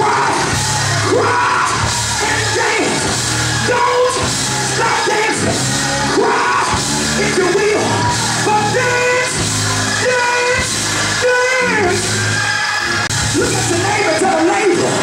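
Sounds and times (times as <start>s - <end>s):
man singing and shouting into microphone: 0.0s - 12.4s, 13.2s - 15.0s
live gospel church music: 0.0s - 15.0s.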